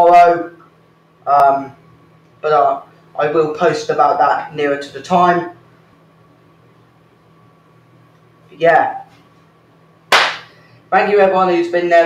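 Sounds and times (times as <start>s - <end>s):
sharp smack: 10.1s - 10.6s.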